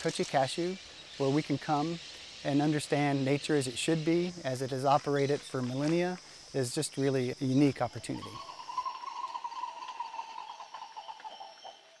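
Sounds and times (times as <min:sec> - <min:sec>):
birds calling: 0:00.0 - 0:12.0
insect drone: 0:00.0 - 0:12.0.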